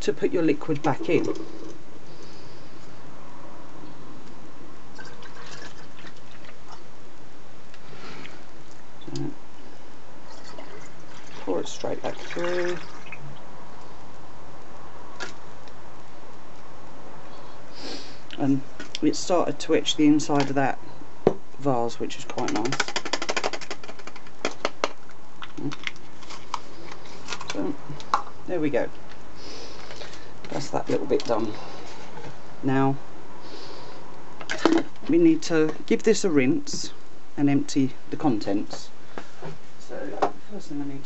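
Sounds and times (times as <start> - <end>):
person speaking: 0.0 - 1.7, 9.0 - 9.4, 11.3 - 13.0, 17.8 - 20.8, 21.6 - 22.9, 27.4 - 29.0, 30.4 - 33.1, 34.6 - 39.0
steady hiss: 0.0 - 22.4, 23.9 - 41.0
liquid draining into bottle: 5.0 - 6.4.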